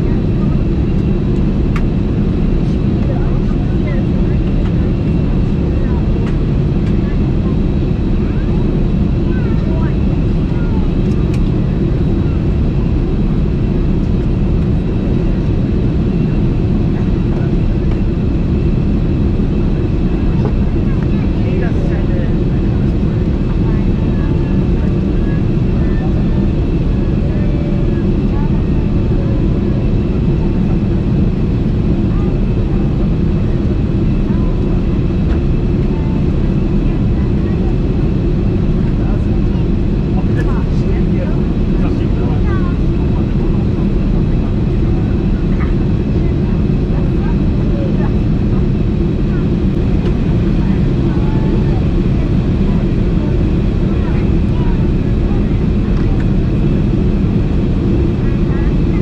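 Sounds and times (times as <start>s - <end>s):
airplane cabin noise: 0.0s - 59.0s.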